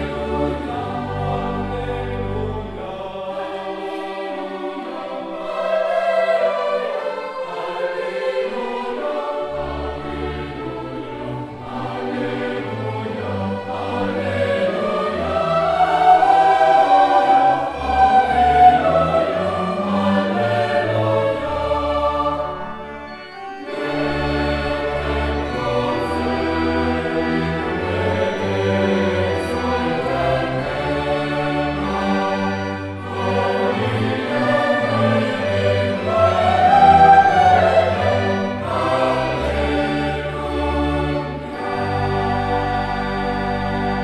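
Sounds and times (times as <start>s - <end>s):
choir with orchestra: 0.0s - 44.0s.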